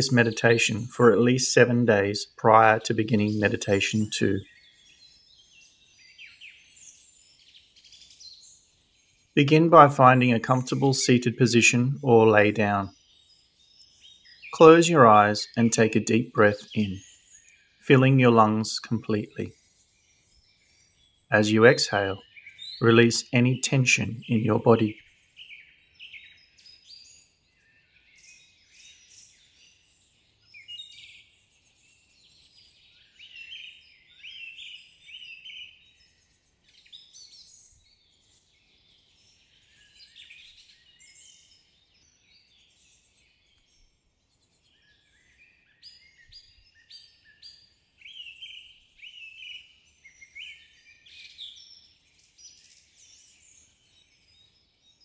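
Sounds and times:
birds chirping: 0.0s - 55.0s.

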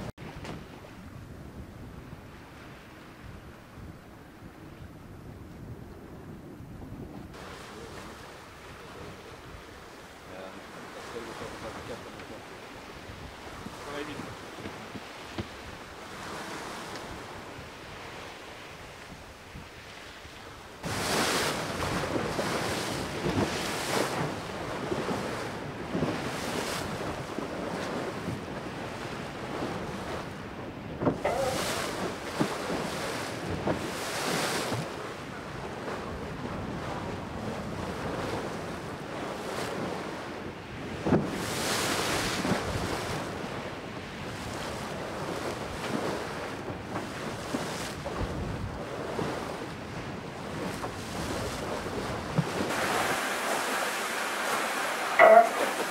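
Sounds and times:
water rushing around boat hull: 0.0s - 55.9s
wind on microphone: 0.0s - 55.9s.

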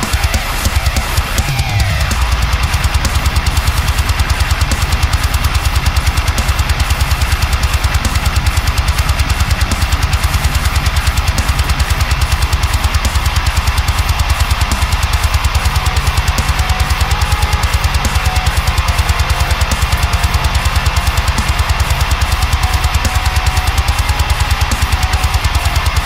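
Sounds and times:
distorted electric guitar riff: 0.0s - 26.0s
fast kick drum: 0.0s - 26.0s.

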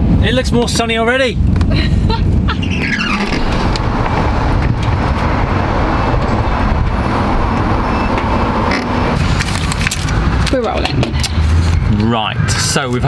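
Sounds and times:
vehicle road and engine noise: 0.0s - 13.0s.

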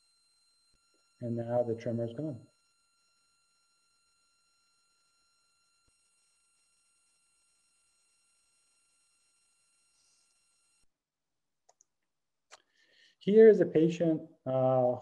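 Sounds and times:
faint steady high tones: 0.0s - 10.9s.

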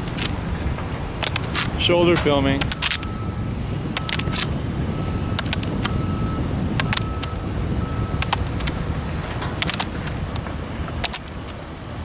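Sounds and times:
ski pole tips clicking on pavement: 0.0s - 3.1s, 3.8s - 4.6s, 5.3s - 6.0s, 6.7s - 7.4s, 8.1s - 12.0s
wheels rumbling on asphalt: 0.0s - 12.0s.

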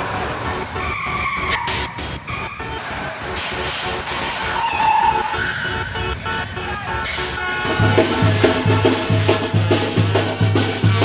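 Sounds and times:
car road and engine noise: 0.0s - 11.0s
latin dance music: 0.4s - 11.0s.

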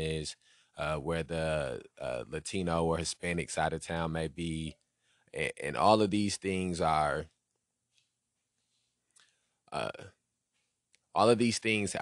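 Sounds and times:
man saying uh: 0.0s - 4.7s, 5.4s - 7.2s, 9.8s - 10.0s, 11.2s - 12.0s.

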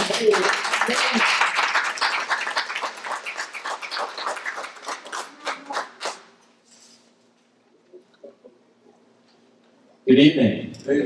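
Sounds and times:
small audience clapping: 0.0s - 6.4s.

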